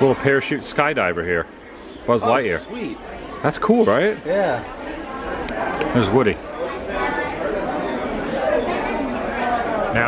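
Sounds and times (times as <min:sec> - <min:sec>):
babble of overlapping voices: 0:00.0 - 0:10.0.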